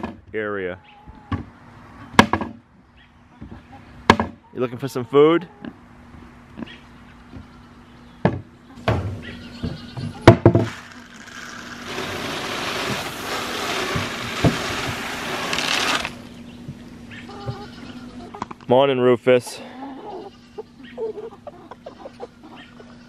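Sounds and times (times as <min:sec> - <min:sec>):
sharp knocks: 0:04.1 - 0:04.4
dry feed pouring into feeder: 0:10.6 - 0:16.2.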